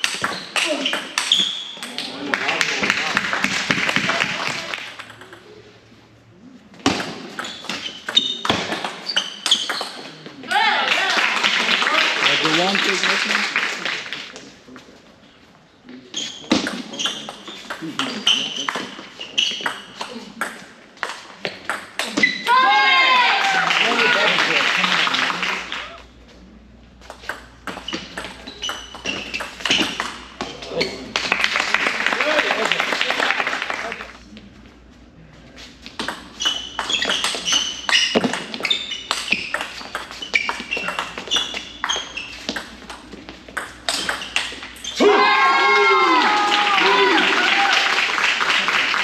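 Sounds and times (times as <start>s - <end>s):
table tennis ball hits: 0.0s - 5.5s, 6.8s - 11.9s, 16.5s - 22.6s, 27.0s - 31.6s, 35.9s - 44.9s
applause: 2.3s - 4.9s, 10.8s - 14.3s, 23.2s - 26.0s, 31.1s - 34.2s, 46.1s - 49.0s
person shouting: 22.5s - 24.3s, 45.0s - 47.7s.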